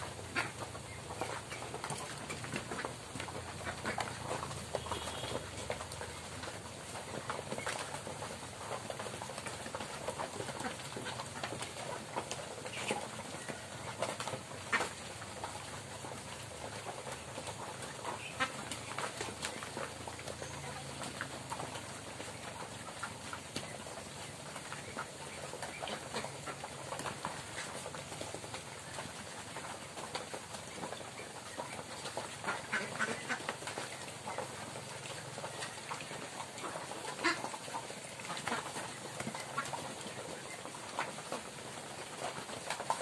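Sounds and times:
duck calls: 0.0s - 5.8s, 32.4s - 34.6s, 36.6s - 39.9s
flock of ducks quacking: 0.0s - 43.0s.

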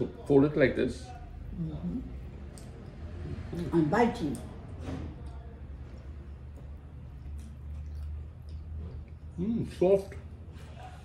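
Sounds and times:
wet chewing: 1.3s - 3.7s, 5.2s - 10.2s.

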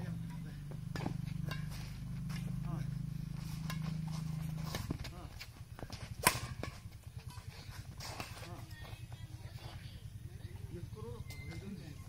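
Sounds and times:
steady low hum: 0.0s - 12.0s
racket hitting shuttlecock: 0.9s - 2.7s, 3.3s - 9.0s.

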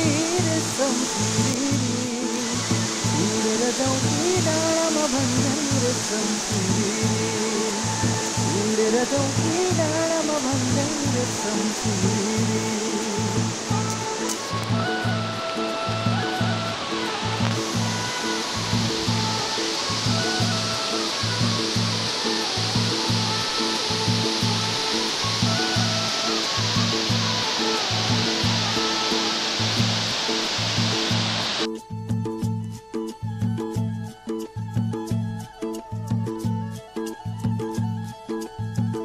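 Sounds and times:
river water rushing: 0.0s - 31.7s
background music with steady beat: 0.0s - 39.0s.

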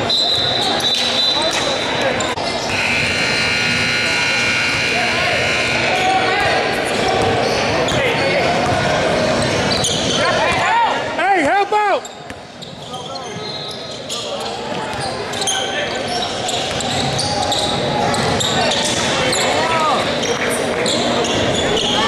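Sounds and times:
echoing crowd chatter: 0.0s - 22.0s
sneaker squeaks on court: 9.4s - 10.3s, 12.0s - 19.6s.

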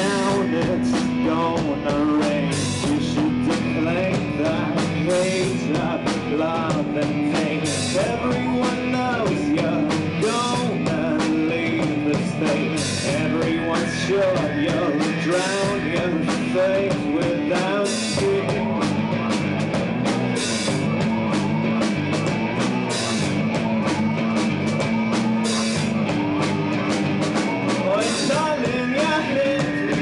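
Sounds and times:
person singing: 0.0s - 19.4s, 27.4s - 30.0s
drum kit beat: 0.0s - 30.0s
electric guitar: 0.0s - 30.0s.

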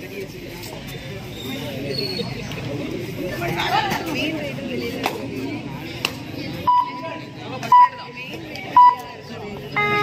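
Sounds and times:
murmur of crowd voices: 0.0s - 10.0s
short electronic beeps: 6.7s - 7.0s, 7.7s - 8.0s, 8.7s - 9.2s.

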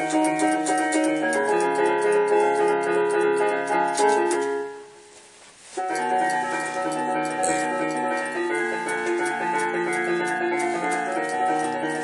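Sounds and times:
electronic keyboard chords: 0.0s - 5.0s, 5.8s - 12.0s.

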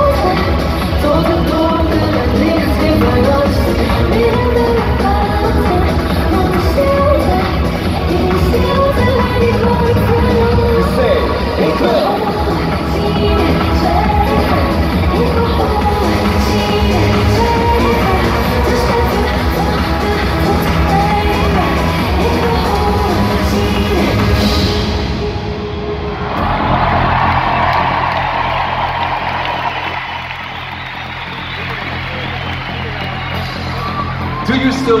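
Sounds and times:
woman singing: 0.0s - 25.0s
electronic dance music: 0.0s - 35.0s
crowd cheering: 25.7s - 35.0s.

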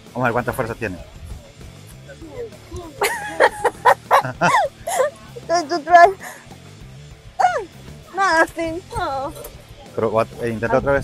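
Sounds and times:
background music: 0.0s - 11.0s
people exclaiming: 2.0s - 6.3s, 7.4s - 7.7s.

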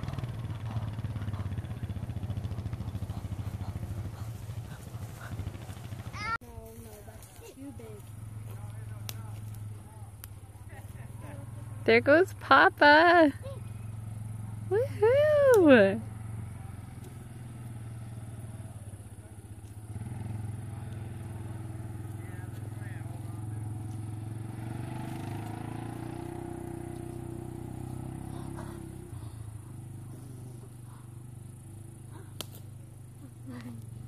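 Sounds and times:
quad bike engine running: 0.0s - 34.0s.

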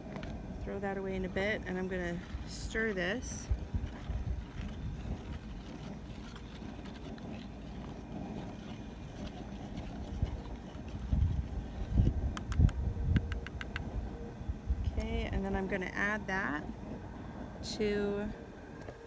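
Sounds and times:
steady low rumble: 0.0s - 19.0s
plastic spoon stirring in bowl: 2.3s - 13.7s.

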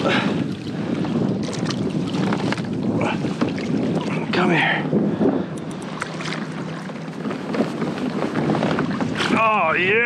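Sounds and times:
water splashing against hull: 0.0s - 10.0s
wind buffeting microphone: 0.0s - 10.0s.

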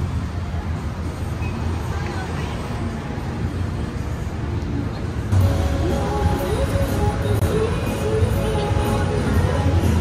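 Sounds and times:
city road traffic hum: 0.0s - 10.0s
indistinct voices: 5.3s - 10.0s.

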